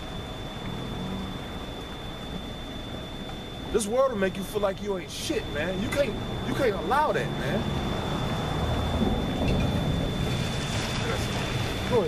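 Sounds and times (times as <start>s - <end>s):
faint low hum: 0.0s - 12.0s
high-pitched whine: 0.0s - 12.0s
low outdoor rumble: 0.0s - 12.0s.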